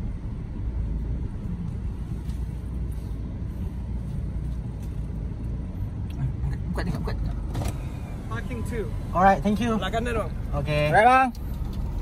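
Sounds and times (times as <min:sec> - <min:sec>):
car engine rumble: 0:00.0 - 0:12.0.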